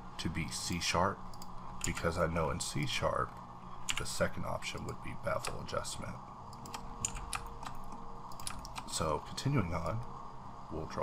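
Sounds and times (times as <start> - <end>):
keyboard and mouse clicking: 6.5 - 8.9.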